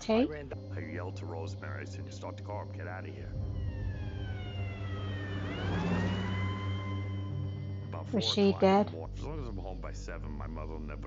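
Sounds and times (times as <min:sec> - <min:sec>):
steady low hum: 0:00.0 - 0:11.0
emergency vehicle siren wailing: 0:00.7 - 0:09.1.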